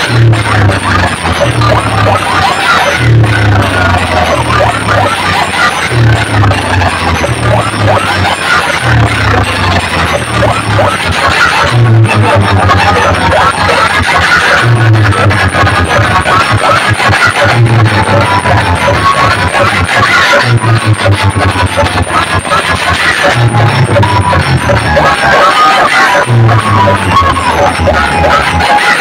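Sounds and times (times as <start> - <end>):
heavy bass figure: 0.0 - 25.3, 26.2 - 28.6
loud dance music: 0.0 - 29.0.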